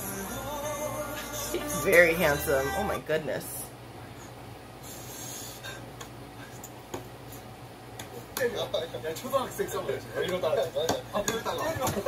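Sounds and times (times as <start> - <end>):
young men talking and laughing: 8.4 - 12.0.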